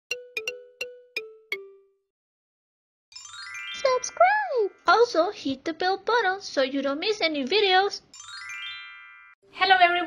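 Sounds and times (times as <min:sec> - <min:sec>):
bell-like chime jingle: 0:03.1 - 0:05.3, 0:08.1 - 0:09.4.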